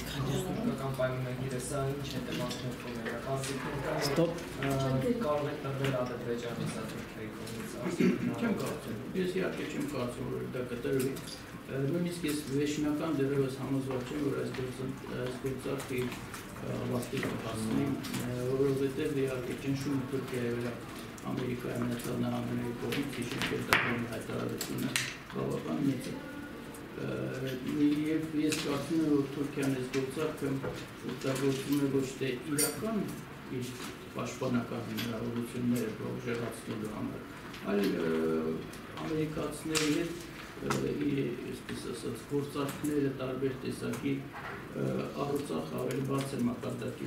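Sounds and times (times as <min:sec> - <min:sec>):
man speaking slowly: 0:00.0 - 0:33.9, 0:34.8 - 0:47.0.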